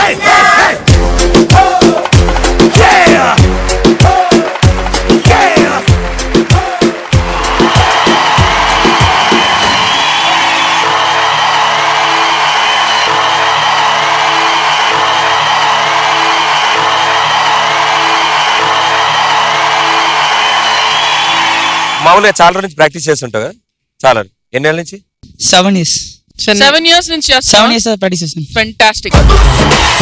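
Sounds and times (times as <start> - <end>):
audience cheering and applause: 0.0 - 22.4, 29.2 - 30.0
music with a beat: 0.9 - 20.6, 29.0 - 30.0.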